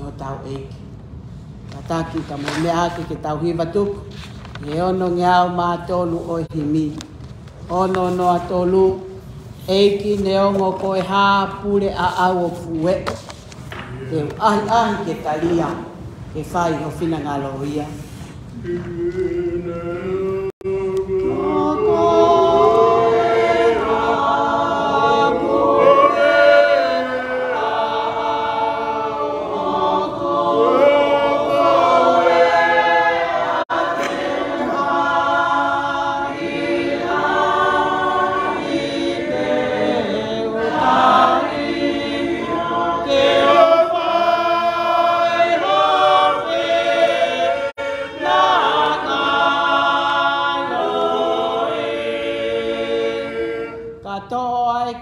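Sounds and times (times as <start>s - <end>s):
group singing a hymn: 13.6s - 17.2s, 17.9s - 55.0s.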